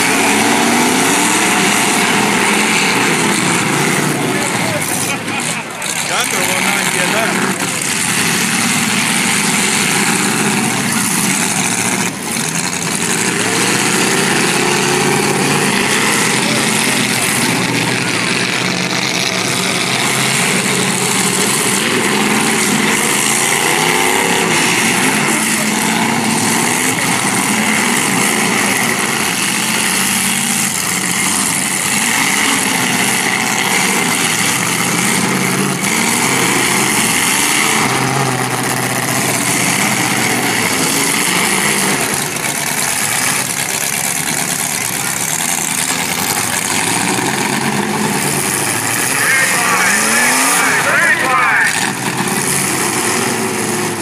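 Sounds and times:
car engines revving: 0.0 - 54.0.

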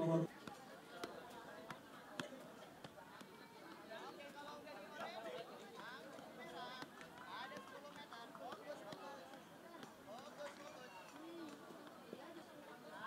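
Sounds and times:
background chatter of voices: 0.0 - 13.0.

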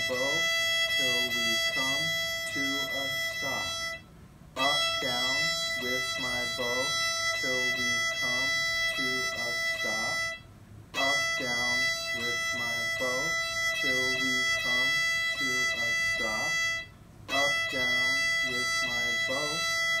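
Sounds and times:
man singing: 0.0 - 4.0, 4.6 - 10.4, 11.0 - 20.0
violin bowed on high note: 0.0 - 20.0.

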